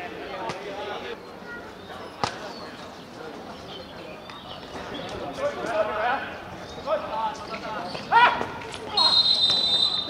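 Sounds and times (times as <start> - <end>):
referee's whistle blast: 9.0 - 10.0.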